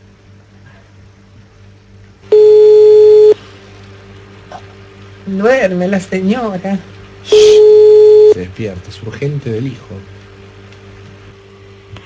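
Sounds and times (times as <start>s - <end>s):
faint low hum: 0.0s - 3.5s, 4.5s - 10.2s
telephone ringback tone: 2.3s - 3.4s, 7.3s - 8.4s.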